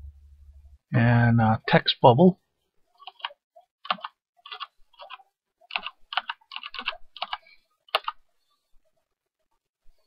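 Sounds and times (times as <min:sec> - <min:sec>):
typing on computer keyboard: 0:03.0 - 0:08.2.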